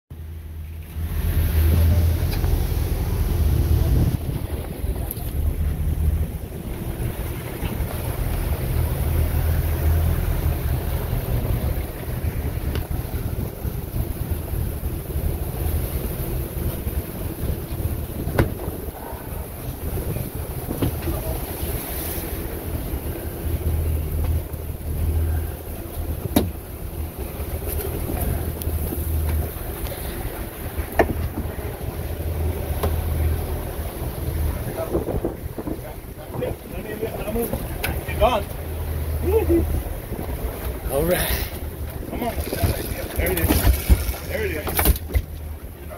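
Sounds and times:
boat engine humming: 0:00.1 - 0:45.9
water rushing past hull: 0:00.1 - 0:45.9
wind buffeting microphone: 0:01.0 - 0:27.2, 0:27.9 - 0:45.9.

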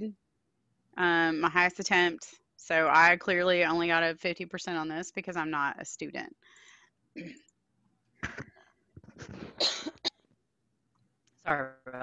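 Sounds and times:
woman coughing: 0:07.2 - 0:07.4, 0:09.5 - 0:10.1.

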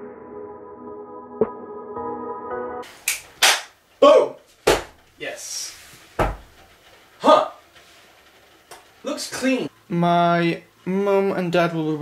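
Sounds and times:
background music: 0:00.0 - 0:03.2.

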